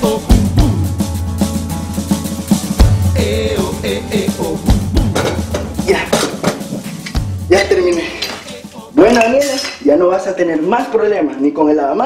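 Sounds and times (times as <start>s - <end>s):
background music: 0.0s - 10.4s
person speaking: 5.7s - 6.4s, 7.5s - 10.0s
metal tools clinking: 6.1s - 9.8s.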